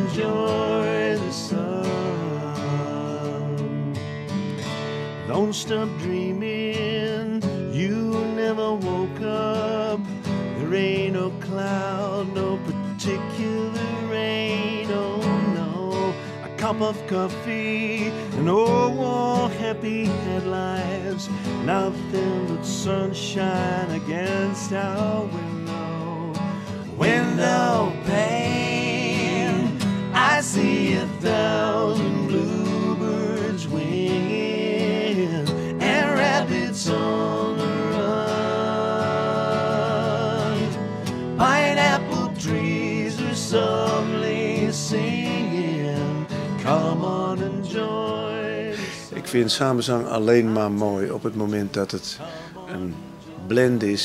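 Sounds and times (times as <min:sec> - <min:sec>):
men singing in harmony: 0:00.0 - 0:04.0, 0:10.6 - 0:50.8, 0:52.2 - 0:53.8
acoustic guitar strumming: 0:00.0 - 0:54.0.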